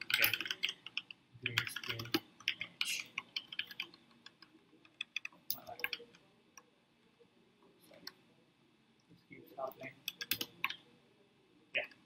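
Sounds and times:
keyboard typing: 0.0s - 6.1s, 10.0s - 10.8s.

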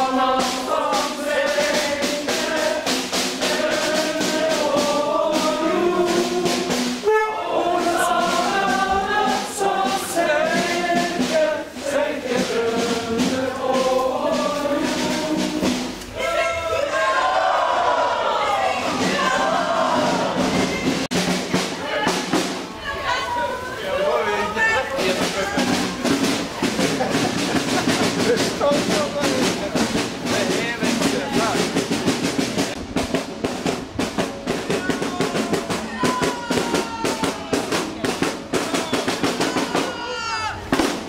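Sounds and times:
marching snare and bass drums: 0.0s - 41.0s
people talking: 7.1s - 15.5s, 16.1s - 32.2s, 34.4s - 40.7s.

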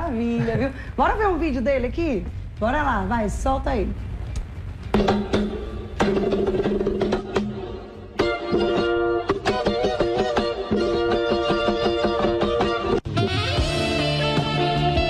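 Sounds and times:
acoustic guitar chords: 5.0s - 15.0s.

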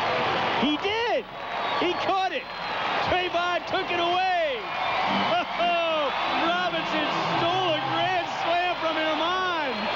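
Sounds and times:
man announcing excitedly: 0.6s - 9.9s.

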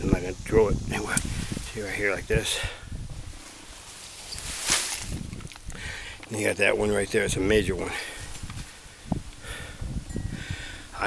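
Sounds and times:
rustle of leaves and twigs: 0.0s - 11.0s.

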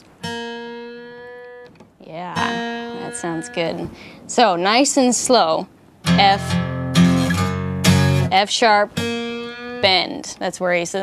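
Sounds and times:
acoustic guitar note plucked: 0.0s - 5.4s, 6.0s - 11.0s.

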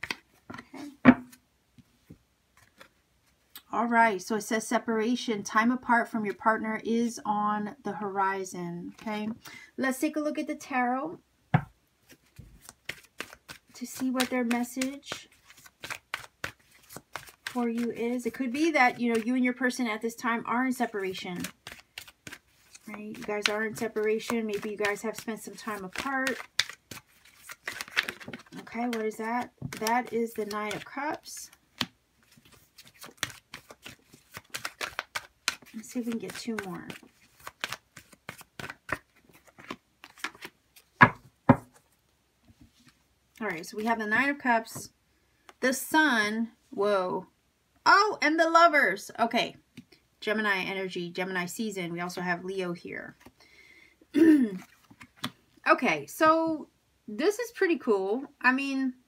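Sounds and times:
cards being shuffled: 0.0s - 1.3s, 2.6s - 3.0s, 12.0s - 19.3s, 20.8s - 41.9s, 54.6s - 55.4s.

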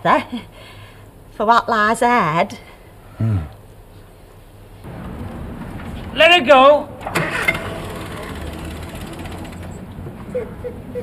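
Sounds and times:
car engine cranking by starter: 6.9s - 10.0s.

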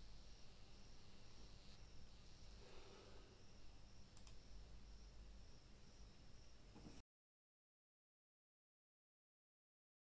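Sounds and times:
faint low hum: 0.0s - 7.0s
quick sharp clicks: 4.1s - 4.4s.

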